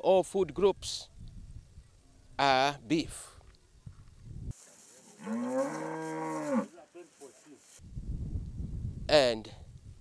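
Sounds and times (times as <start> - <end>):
cow mooing: 5.2 - 6.8.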